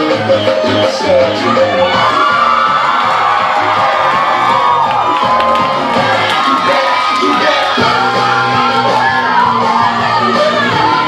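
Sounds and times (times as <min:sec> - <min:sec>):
dance music: 0:00.0 - 0:11.0
audience cheering and whooping: 0:00.5 - 0:11.0.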